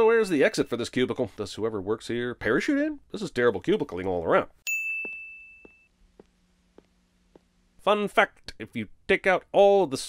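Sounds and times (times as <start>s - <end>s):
bright electronic ding: 4.7s - 5.9s.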